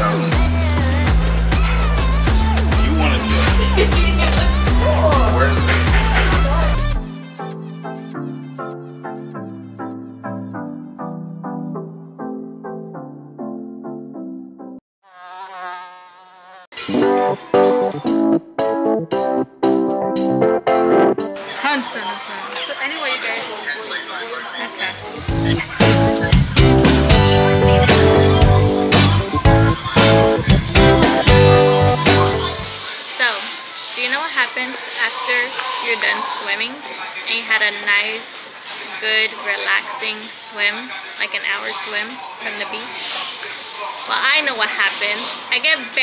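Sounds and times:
loud choppy music chords: 0.0 - 8.0, 16.8 - 21.4, 25.2 - 32.7
woman talking: 21.5 - 25.0, 33.1 - 38.4, 39.0 - 42.9, 44.1 - 46.0.

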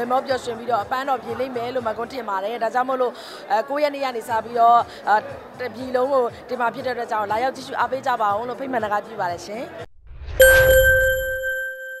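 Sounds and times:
low rumbling whoosh: 10.0 - 10.8
bright bell-like ding: 10.4 - 12.0.

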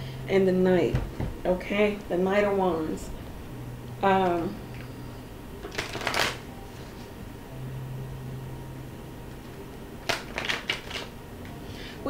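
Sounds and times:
cards rustling and tapping: 5.6 - 6.9, 10.0 - 11.1.

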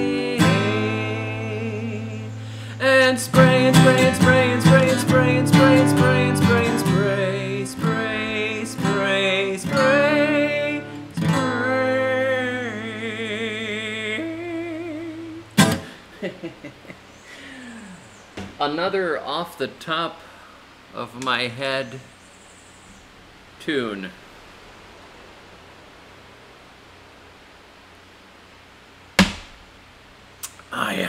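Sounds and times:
strummed acoustic guitar: 0.0 - 14.8, 15.4 - 16.0
man singing: 0.0 - 15.8
sharp knock: 29.2 - 29.7.

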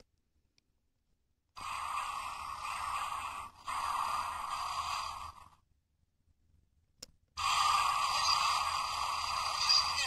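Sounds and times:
steady hissing: 1.6 - 5.7, 7.4 - 10.0.

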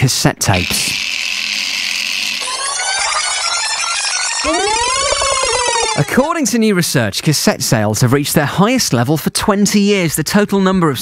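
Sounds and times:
synth tones: 0.7 - 6.3
rising synth sweep: 0.9 - 6.3.

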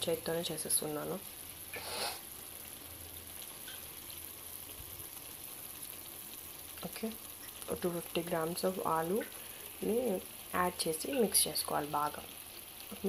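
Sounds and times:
food sizzling in a pan: 0.0 - 13.0.

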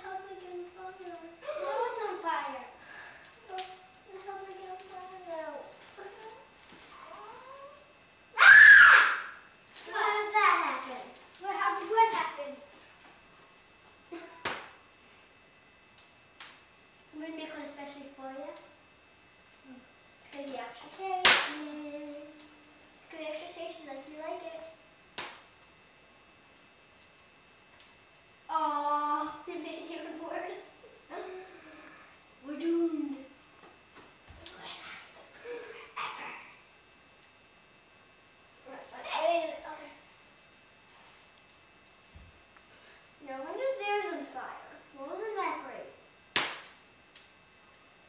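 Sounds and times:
child shrieking: 8.4 - 9.4
sharp snap: 14.4 - 14.8, 21.2 - 21.6, 25.2 - 25.5, 46.3 - 47.3.

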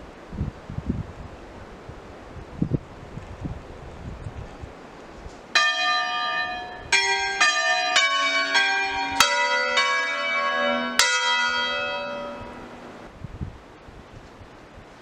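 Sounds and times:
church bells ringing: 5.5 - 13.0.

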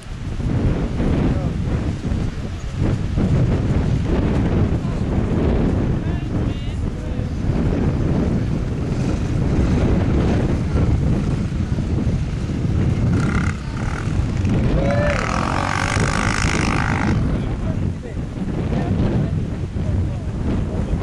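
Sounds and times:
wind buffeting microphone: 0.0 - 21.0
dirt bike engine running: 8.4 - 17.6.

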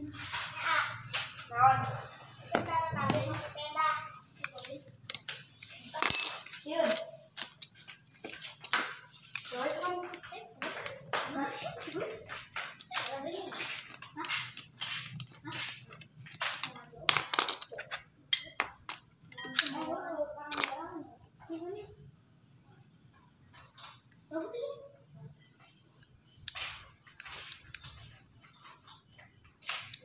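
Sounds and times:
child's voice: 0.1 - 4.9, 6.6 - 7.2, 9.5 - 14.5, 19.4 - 22.0, 24.3 - 25.0.

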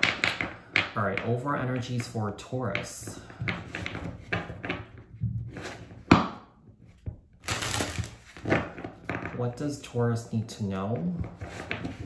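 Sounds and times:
cards riffling: 7.4 - 8.5
cards shuffling and rustling: 7.4 - 9.4.

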